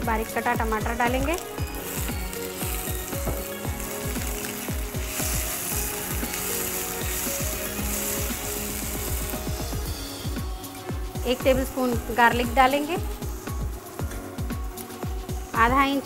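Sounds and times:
frying sizzle: 0:00.0 - 0:16.0.

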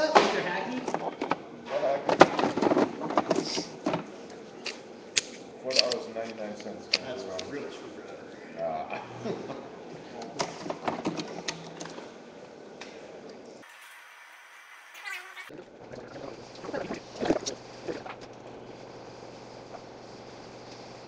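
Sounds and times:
thin high wavering sound: 0:13.6 - 0:15.5.

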